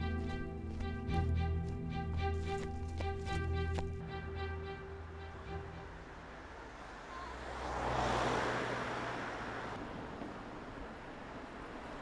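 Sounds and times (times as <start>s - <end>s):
car driving past: 5.1s - 10.5s.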